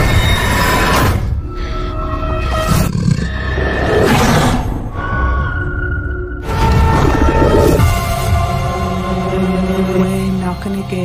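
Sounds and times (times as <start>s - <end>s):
dark ominous music: 0.0s - 11.0s.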